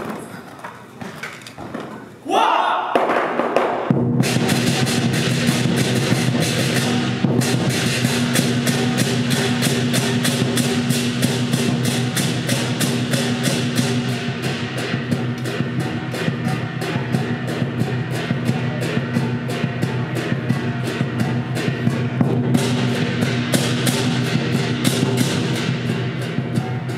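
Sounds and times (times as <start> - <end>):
drum beating: 1.6 - 26.9
cymbals and gong crashing: 3.8 - 26.9.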